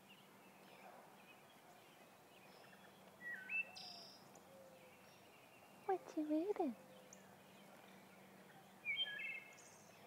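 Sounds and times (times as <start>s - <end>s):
bird singing whistled notes: 2.5s - 4.2s, 8.8s - 10.0s.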